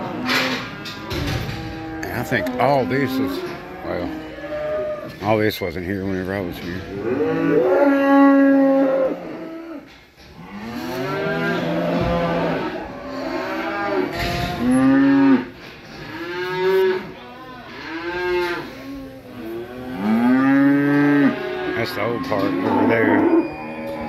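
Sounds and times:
cattle mooing: 0:00.0 - 0:05.2, 0:06.9 - 0:24.0.

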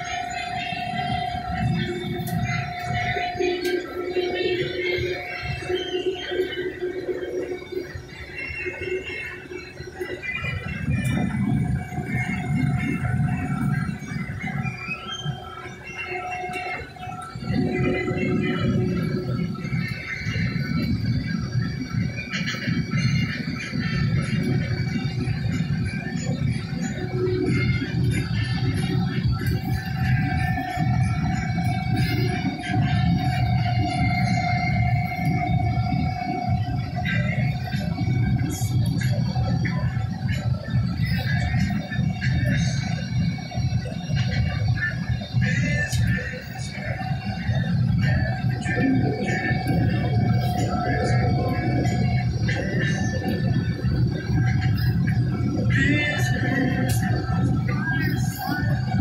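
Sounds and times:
combine harvester rumble: 0:00.0 - 0:59.0
high squealing tones: 0:00.0 - 0:59.0
steady machine whine: 0:00.0 - 0:59.0.

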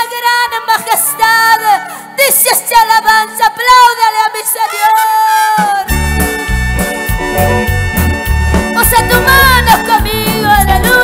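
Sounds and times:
live band playing: 0:04.5 - 0:11.0
trumpets playing held notes: 0:04.7 - 0:10.4.

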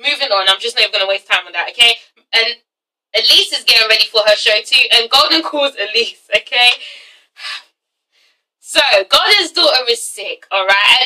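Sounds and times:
woman speaking: 0:00.0 - 0:02.6, 0:03.2 - 0:07.6, 0:08.7 - 0:11.0
woman gasping: 0:06.8 - 0:07.6.

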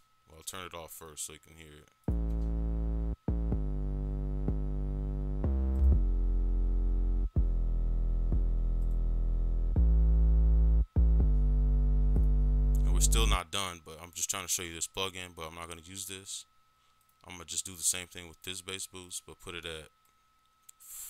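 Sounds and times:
synth bass line: 0:02.1 - 0:13.4.

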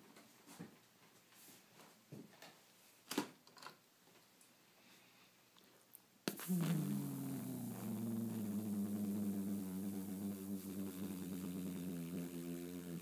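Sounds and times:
person humming low drone: 0:06.4 - 0:13.0.

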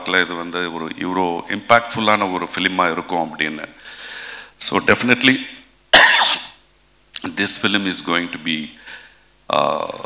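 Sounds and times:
man speaking: 0:00.0 - 0:03.8, 0:04.6 - 0:05.7, 0:07.2 - 0:08.8, 0:09.5 - 0:10.0
man coughing: 0:06.0 - 0:06.6.

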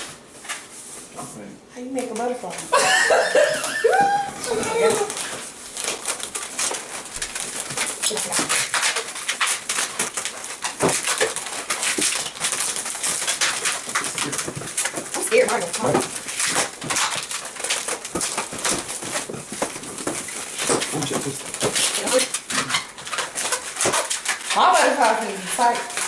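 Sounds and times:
balloons squeaking while twisted: 0:02.8 - 0:26.0.

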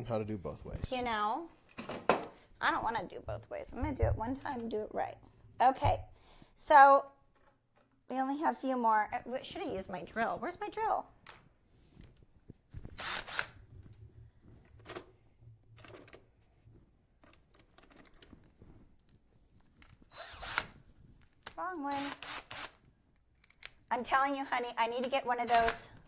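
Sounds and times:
drill bit scraping and clicking: 0:13.0 - 0:13.6, 0:20.1 - 0:20.8
electric drill motor running: 0:13.0 - 0:13.6, 0:20.1 - 0:20.8, 0:21.9 - 0:22.8.

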